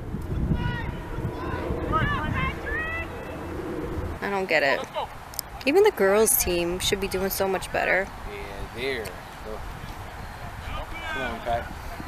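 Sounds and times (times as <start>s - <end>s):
wind rumble on microphone: 0.0s - 12.0s
distant shouting voices: 0.4s - 5.2s, 10.1s - 12.0s.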